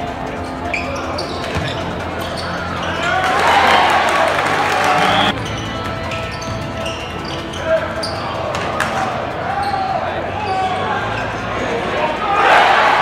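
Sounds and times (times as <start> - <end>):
crowd murmur: 0.0 - 13.0
loud crowd noise: 0.0 - 13.0
sneaker squeaks: 0.3 - 3.4, 4.9 - 11.8
basketball bouncing: 1.2 - 2.3.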